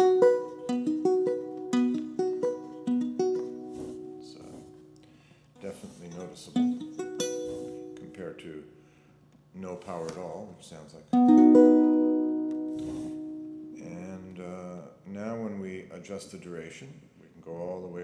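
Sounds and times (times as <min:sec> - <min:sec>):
fingerpicked acoustic guitar: 0:00.0 - 0:08.3, 0:11.1 - 0:14.0.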